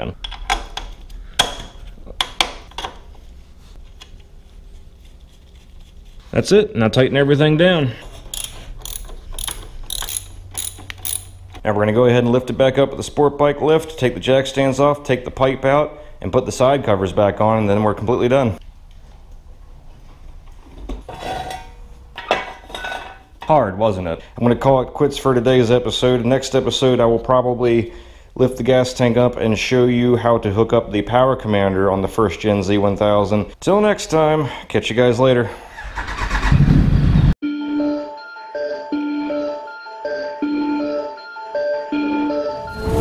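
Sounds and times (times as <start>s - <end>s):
metal tools clinking on metal: 8.2s - 11.5s.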